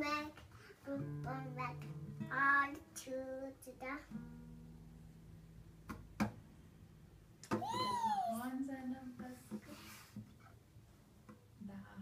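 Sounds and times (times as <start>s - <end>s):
child crying out: 7.5s - 8.5s.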